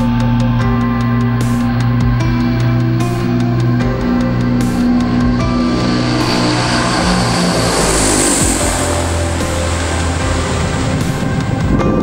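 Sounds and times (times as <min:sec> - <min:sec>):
background music: 0:00.0 - 0:12.0
turboprop aircraft passing: 0:00.0 - 0:12.0.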